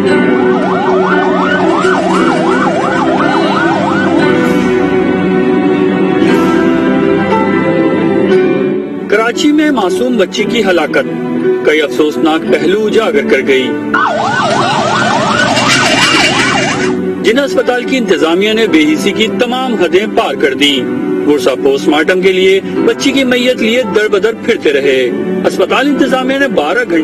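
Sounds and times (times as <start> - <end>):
ambulance siren yelping: 0.0 - 5.0, 13.9 - 17.1.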